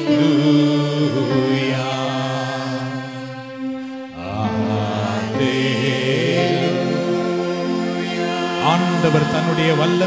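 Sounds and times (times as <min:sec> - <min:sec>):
man singing worship song: 0:00.0 - 0:03.2, 0:04.2 - 0:10.0
sustained instrumental chords: 0:00.0 - 0:10.0.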